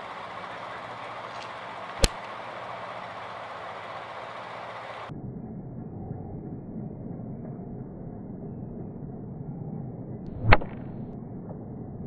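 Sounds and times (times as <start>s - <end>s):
outdoor background hiss: 0.0s - 5.1s.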